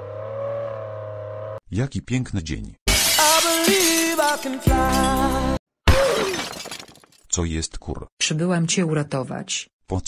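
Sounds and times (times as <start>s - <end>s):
shattering crash: 2.9s - 7.2s.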